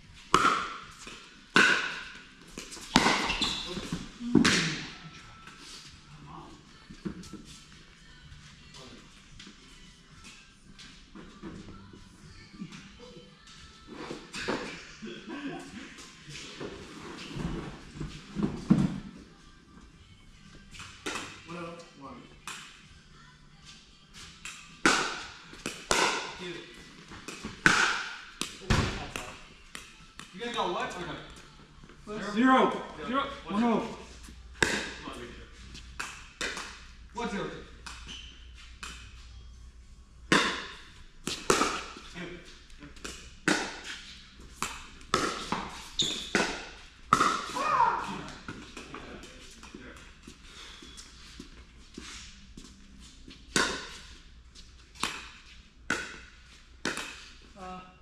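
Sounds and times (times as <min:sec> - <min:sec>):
paddles hitting plastic ball: 0:41.2 - 0:42.0, 0:55.0 - 0:57.2.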